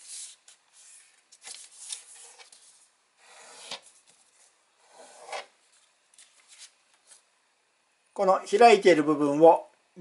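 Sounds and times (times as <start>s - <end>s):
paper rustling and crinkling: 0.0s - 2.9s, 5.7s - 7.3s.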